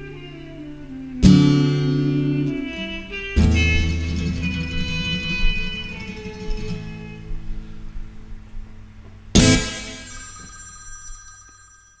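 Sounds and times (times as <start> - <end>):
band chord ringing out: 9.4 - 11.5.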